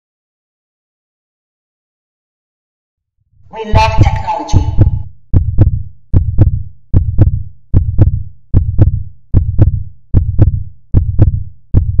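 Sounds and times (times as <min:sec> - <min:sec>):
deep double thump beat: 0:03.7 - 0:12.0.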